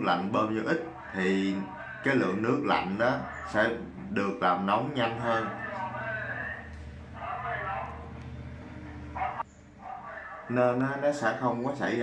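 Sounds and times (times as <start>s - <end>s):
dog barking: 5.1s - 8.1s, 8.9s - 10.5s.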